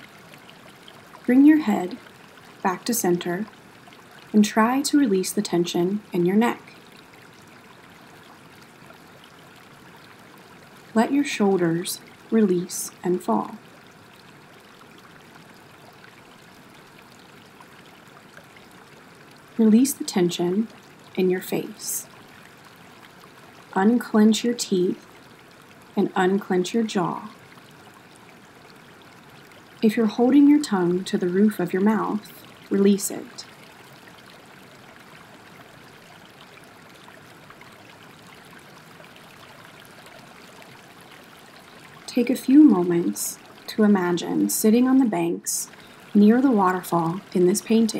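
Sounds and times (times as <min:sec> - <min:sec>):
stream water running: 0:00.0 - 0:47.9.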